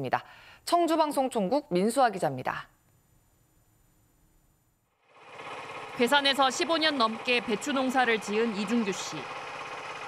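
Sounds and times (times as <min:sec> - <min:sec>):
small engine chugging: 0:05.0 - 0:10.0.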